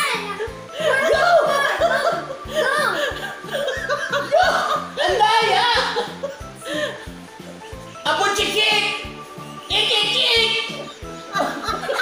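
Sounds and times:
woman laughing loudly: 0.8s - 7.1s, 10.8s - 12.0s.

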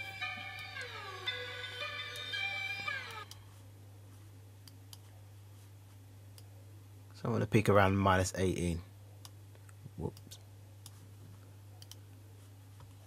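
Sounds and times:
melodic loop with sliding notes: 0.0s - 3.3s.

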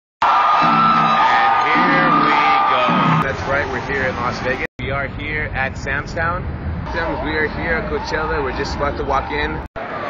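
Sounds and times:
crowd whooping and shouting: 0.2s - 4.6s.

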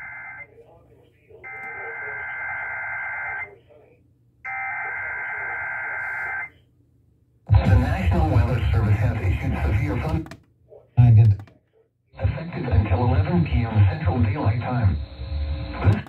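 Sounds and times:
broadcast voice reading: 7.5s - 11.6s, 12.2s - 15.0s.

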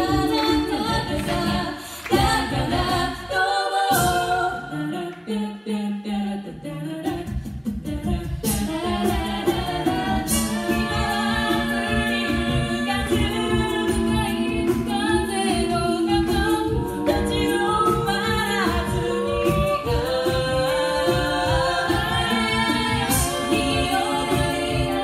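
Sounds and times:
women singing a cappella: 0.0s - 25.0s
low rhythmic beat: 7.2s - 25.0s.

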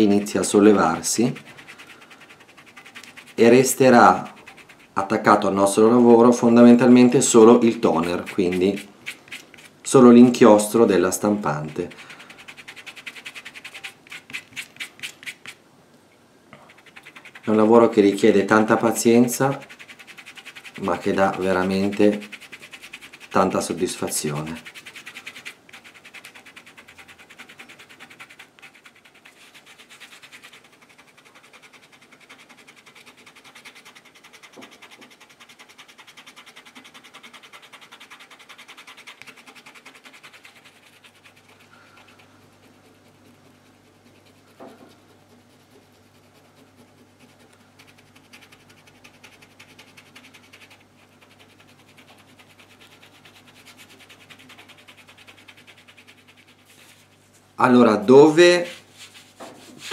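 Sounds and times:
fingertips rubbing damp paper: 0.0s - 5.2s, 6.3s - 9.8s, 10.6s - 15.6s, 16.6s - 57.4s, 58.3s - 59.9s.

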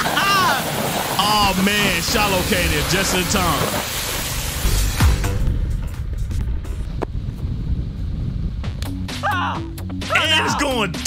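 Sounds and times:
bass-heavy rumbling music: 1.4s - 11.0s.

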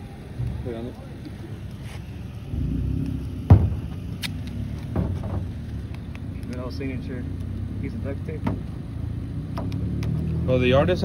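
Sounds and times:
motor vehicle rumbling: 0.0s - 11.0s
sharp knock: 3.5s - 3.9s.

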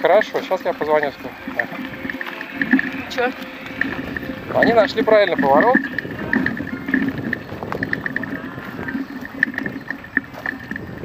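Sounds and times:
bicycle tyres rumbling on dirt: 0.0s - 11.0s.

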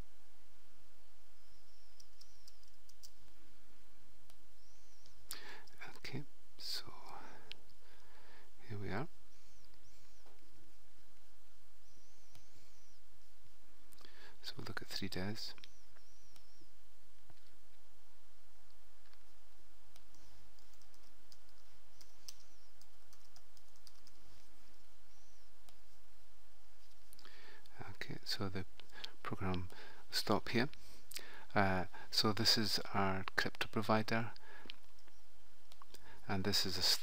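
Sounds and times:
steady low hum: 0.0s - 37.0s
mouse clicking: 1.8s - 3.4s, 12.2s - 12.9s, 15.6s - 16.6s, 19.9s - 25.9s
man whispering breathily: 5.3s - 7.5s
keyboard keys tapping: 19.9s - 24.3s.

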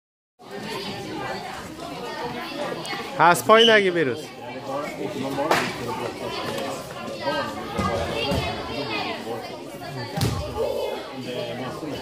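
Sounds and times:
chatter of many voices: 0.4s - 12.0s.

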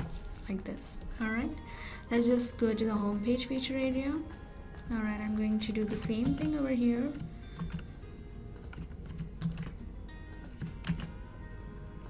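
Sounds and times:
computer keyboard clicks: 5.2s - 7.9s, 8.5s - 11.1s.

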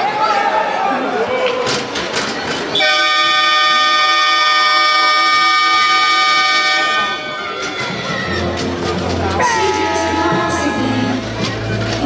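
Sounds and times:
arena horn blast: 2.8s - 7.5s.

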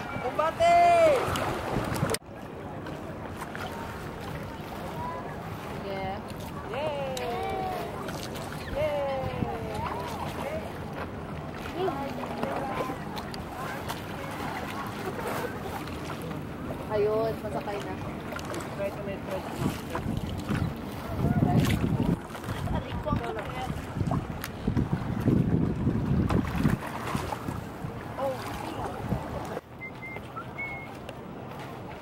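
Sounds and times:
wind buffeting microphone: 0.0s - 2.2s, 6.5s - 15.8s, 16.5s - 29.7s
water rushing along hull: 0.0s - 32.0s
faint voices: 2.1s - 23.9s.

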